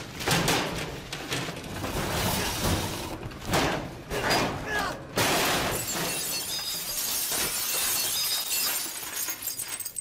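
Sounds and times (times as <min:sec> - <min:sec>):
glass panel shattering: 0:05.2 - 0:09.6
glass shards tinkling: 0:05.8 - 0:10.0.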